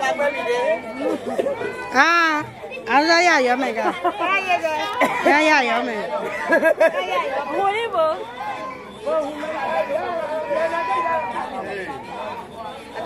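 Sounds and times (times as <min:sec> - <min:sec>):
people talking and chattering: 0:00.0 - 0:13.0.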